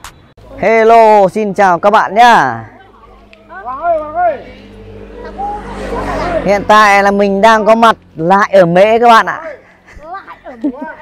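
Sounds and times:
car engine approaching: 2.0 - 11.0.

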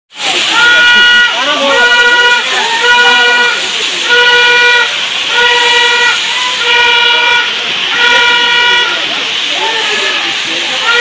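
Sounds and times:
rushing waterfall: 0.1 - 11.0.

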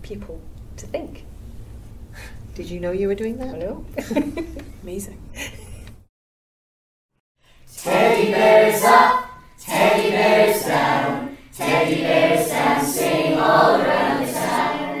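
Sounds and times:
choir singing: 7.7 - 15.0.

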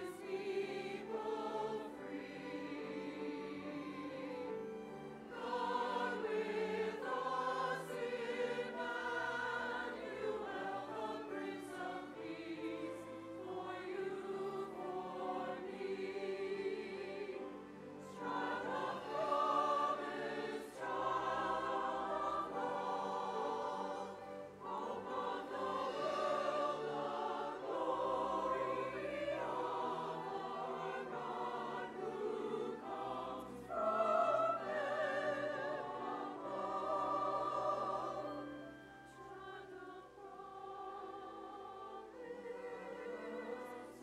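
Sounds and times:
choir singing with vibrato: 0.0 - 44.0
string orchestra: 0.0 - 44.0.

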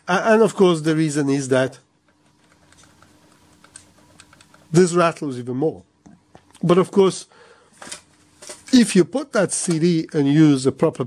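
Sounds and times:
faint steady hum: 0.0 - 11.0
disc rattling and ticking: 2.0 - 4.8.

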